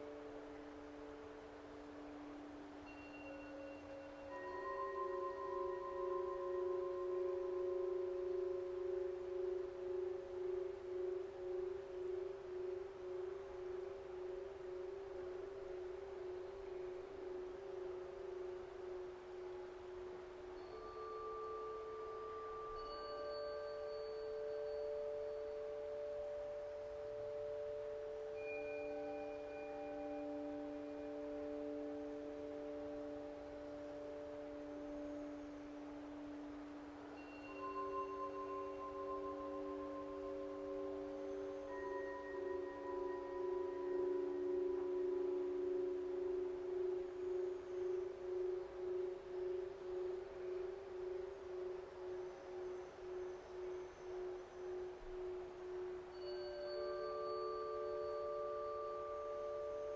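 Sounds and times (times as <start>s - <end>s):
ringing bell-like tones: 0.0s - 59.9s.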